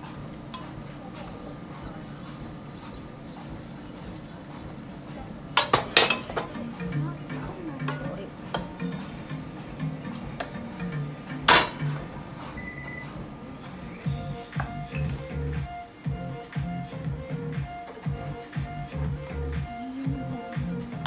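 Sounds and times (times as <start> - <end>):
gas stove hiss: 0.0 - 21.0
wok clanking on metal grate: 5.5 - 12.2.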